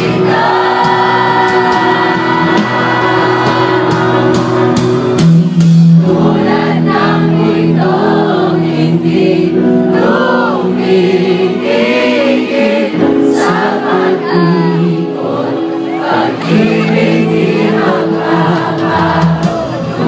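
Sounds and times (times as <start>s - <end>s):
singer's voice: 0.0s - 5.2s, 5.9s - 20.0s
crowd singing along: 0.0s - 20.0s
live band playing: 0.0s - 20.0s.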